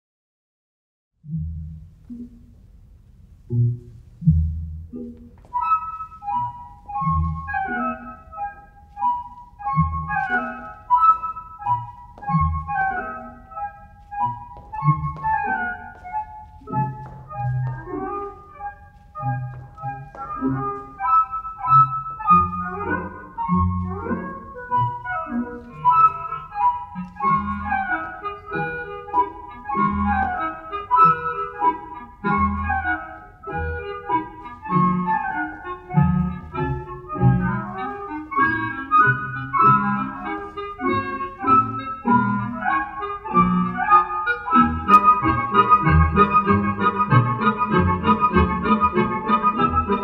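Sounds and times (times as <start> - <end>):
orchestral ballet music: 1.2 - 50.0.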